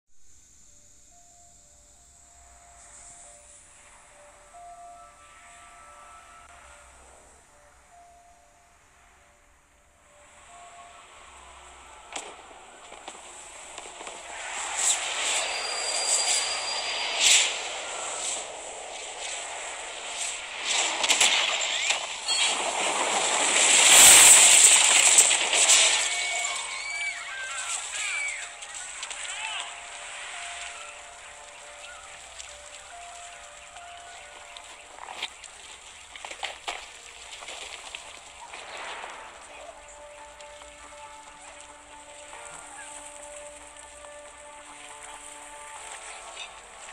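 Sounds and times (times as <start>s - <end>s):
soft held tones: 0.3s - 18.7s
rush of noise: 2.2s - 46.9s
sharp cracks: 12.1s - 46.2s.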